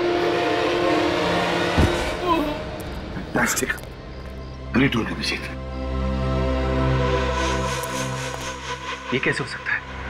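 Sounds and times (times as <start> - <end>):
horn-like held drone note: 0.0 - 2.2.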